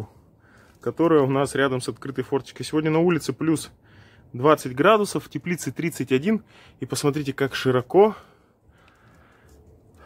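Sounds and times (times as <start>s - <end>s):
man speaking: 0.8s - 8.3s.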